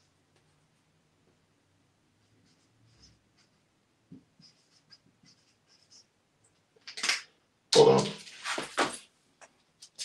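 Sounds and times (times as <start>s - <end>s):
marker squeaking on whiteboard: 4.4s - 6.1s.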